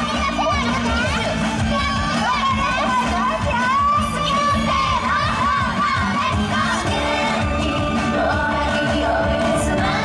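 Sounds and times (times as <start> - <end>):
female voices singing and shouting: 0.0 - 10.0
upbeat pop song: 0.0 - 10.0.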